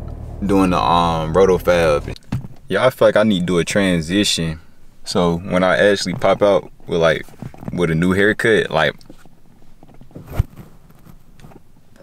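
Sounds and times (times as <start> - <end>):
car cabin background: 0.0 - 12.0.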